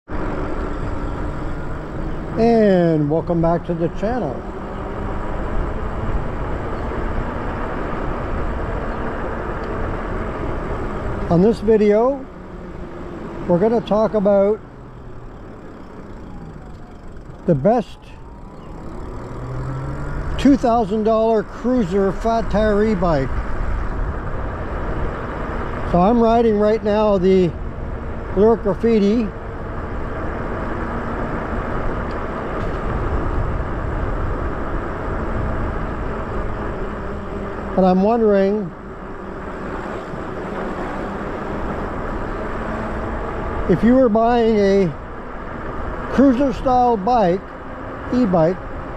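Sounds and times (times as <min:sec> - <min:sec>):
tire road noise: 0:00.0 - 0:48.9
wind rushing on microphone: 0:18.2 - 0:47.5.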